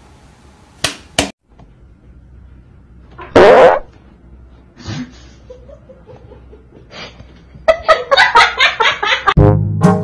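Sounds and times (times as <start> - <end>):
person farting: 3.2 - 4.0.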